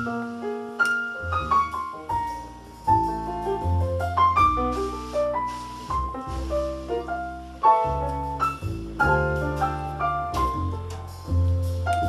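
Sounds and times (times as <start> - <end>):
double bass line: 0.0 - 12.0
piano melody: 0.0 - 12.0.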